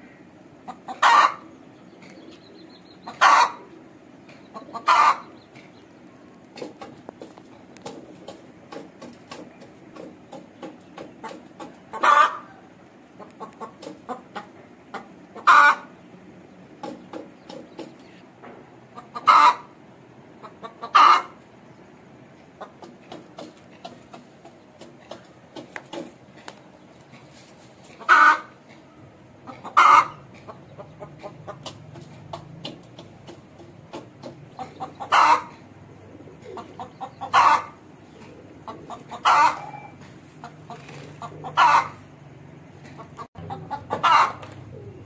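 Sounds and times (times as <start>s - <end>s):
hen clucking: 0.0s - 45.0s
hen pecking grain: 4.3s - 12.4s, 22.6s - 28.9s.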